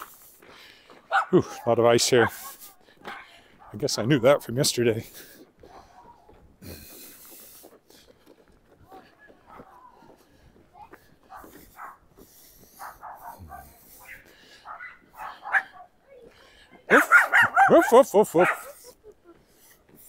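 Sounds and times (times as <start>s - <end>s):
small dog barking and yipping: 1.1s - 3.8s, 11.3s - 12.0s, 12.8s - 15.9s, 16.9s - 18.9s.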